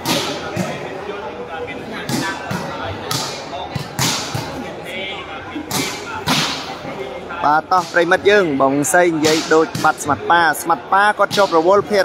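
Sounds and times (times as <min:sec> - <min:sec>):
crowd chatter: 0:00.0 - 0:12.0
volleyball struck by hand: 0:02.1 - 0:04.5, 0:09.2 - 0:10.0.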